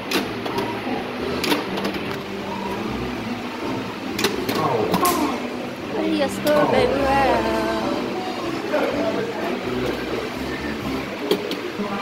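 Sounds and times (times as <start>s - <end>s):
murmur of voices: 0.5s - 12.0s.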